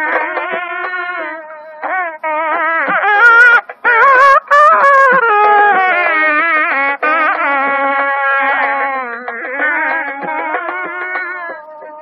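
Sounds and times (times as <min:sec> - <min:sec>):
double-reed wind instrument melody: 0:00.0 - 0:12.0.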